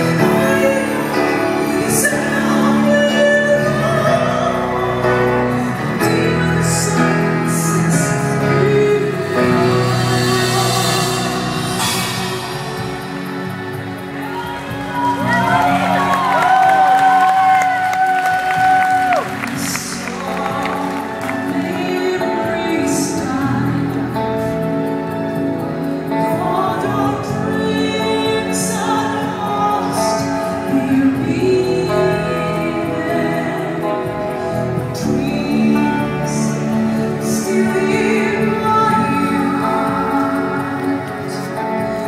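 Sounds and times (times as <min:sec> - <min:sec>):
woman singing soprano: 0:00.0 - 0:25.1, 0:26.1 - 0:42.0
live symphonic metal band: 0:00.0 - 0:42.0.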